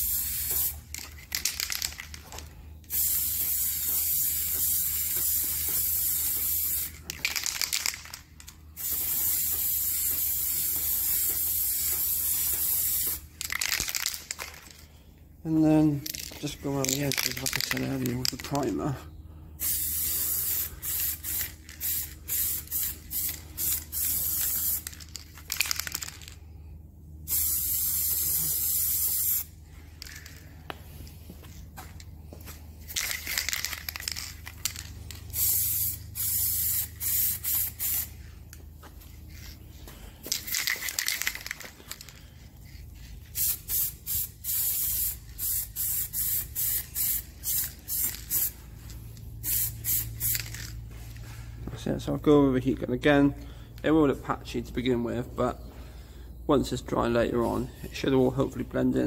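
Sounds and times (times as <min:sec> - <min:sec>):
aerosol spray can hissing: 0:00.0 - 0:00.9, 0:08.8 - 0:13.3, 0:19.6 - 0:24.9, 0:27.3 - 0:29.5, 0:35.4 - 0:38.2, 0:43.3 - 0:48.6, 0:49.4 - 0:50.5.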